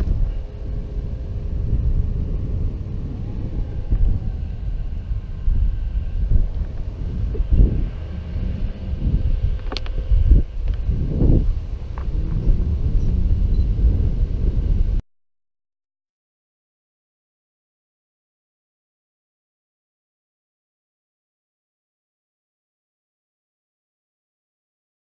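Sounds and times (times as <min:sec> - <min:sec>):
bicycle tyres rolling on gravel: 0:00.0 - 0:15.0
wind buffeting microphone: 0:00.0 - 0:15.0.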